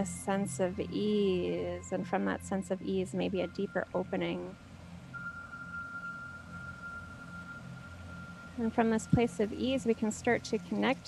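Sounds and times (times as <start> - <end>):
high pure tone: 0.0 - 11.0
low steady hum: 0.0 - 11.0.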